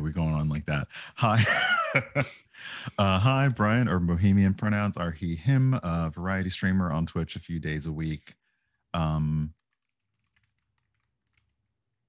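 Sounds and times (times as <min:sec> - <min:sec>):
typing on computer keyboard: 0:09.4 - 0:11.8.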